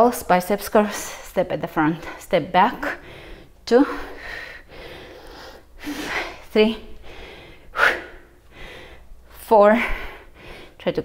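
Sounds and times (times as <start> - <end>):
woman breathing hard: 2.9 - 10.8.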